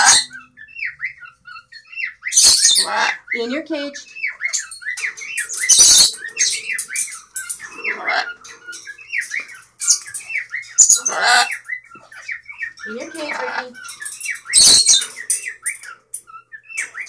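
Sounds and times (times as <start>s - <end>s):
harsh parrot squawks: 0.0s - 1.2s, 2.0s - 3.4s, 10.8s - 11.6s.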